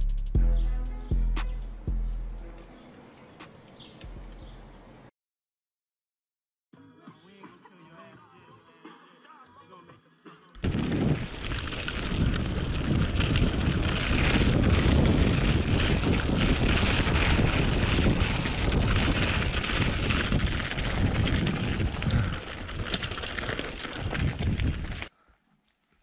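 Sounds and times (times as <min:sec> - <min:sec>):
bike rattling: 0:10.6 - 0:25.1
tyres crunching on gravel: 0:10.6 - 0:25.1
wind buffeting microphone: 0:10.6 - 0:25.1.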